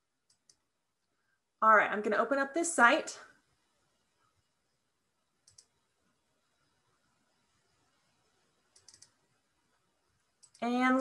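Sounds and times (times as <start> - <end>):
computer mouse clicks: 0.2 - 0.6, 5.4 - 5.8, 8.6 - 9.3, 10.4 - 10.7.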